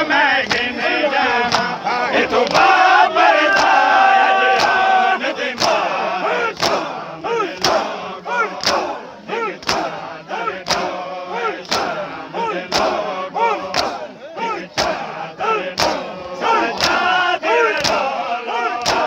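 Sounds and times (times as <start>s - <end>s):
men chanting loudly: 0.0s - 19.0s.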